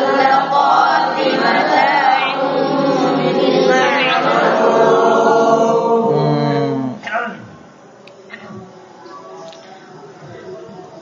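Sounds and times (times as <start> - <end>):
group of voices chanting: 0.0 - 7.1.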